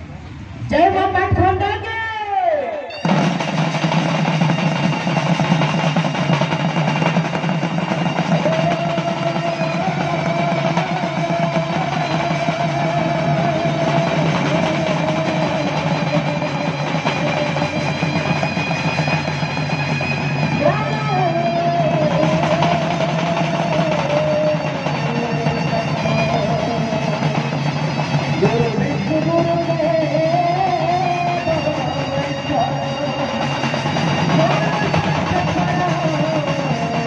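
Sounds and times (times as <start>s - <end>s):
barrel drums playing fast rhythm: 2.9s - 37.0s
wavering melody line: 2.9s - 37.0s.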